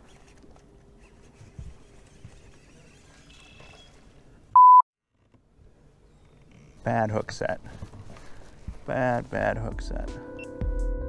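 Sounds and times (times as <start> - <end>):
censor bleep: 4.6 - 4.8.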